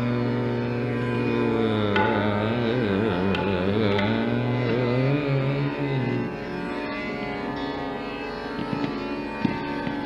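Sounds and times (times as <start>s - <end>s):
tanpura drone: 0.0s - 10.0s
soft tabla strokes: 1.7s - 5.0s, 8.5s - 10.0s.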